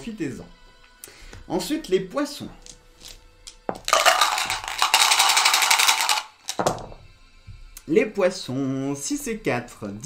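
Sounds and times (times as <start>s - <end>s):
dice rattling in a cup: 2.6s - 6.8s
dice clattering into a tray: 2.6s - 6.9s.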